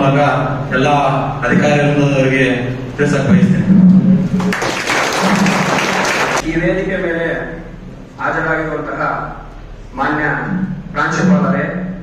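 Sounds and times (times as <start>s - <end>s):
audience applauding: 4.4s - 6.4s.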